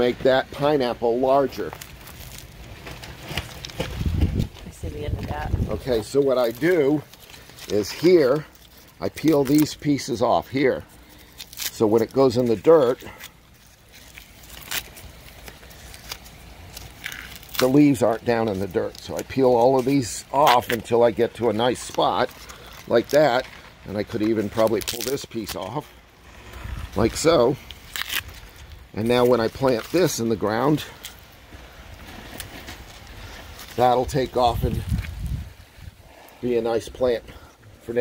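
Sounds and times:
faint leaf rustle: 0:00.0 - 0:38.0
dry leaves crackling and snapping: 0:00.5 - 0:35.9.

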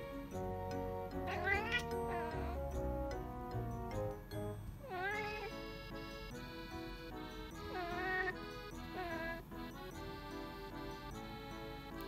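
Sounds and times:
background music: 0:00.0 - 0:12.0
kitten chirping: 0:01.2 - 0:02.6, 0:04.8 - 0:06.1, 0:07.6 - 0:09.5.

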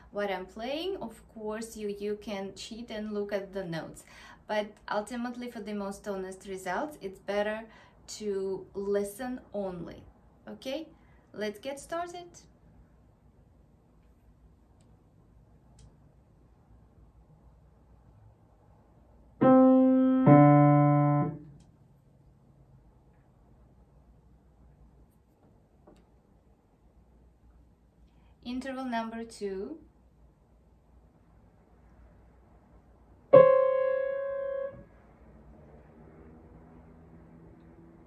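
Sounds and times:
piano notes: 0:19.4 - 0:21.5, 0:33.3 - 0:34.9
grand piano notes: 0:33.3 - 0:34.8.

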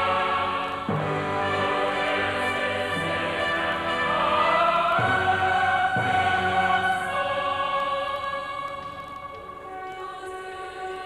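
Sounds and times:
choir singing long held notes: 0:00.0 - 0:11.0.

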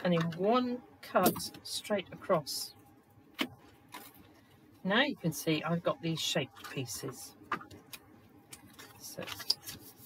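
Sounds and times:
card handling noise: 0:07.5 - 0:10.0.

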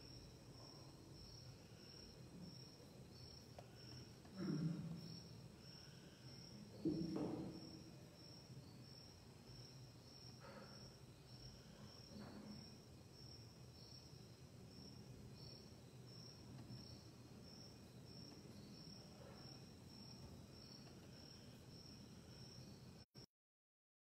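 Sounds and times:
cricket chirping: 0:00.0 - 0:23.1.

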